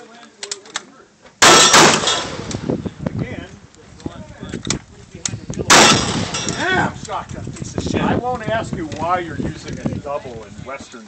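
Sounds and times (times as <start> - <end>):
rifle shot: 1.4 - 2.7, 5.7 - 6.8.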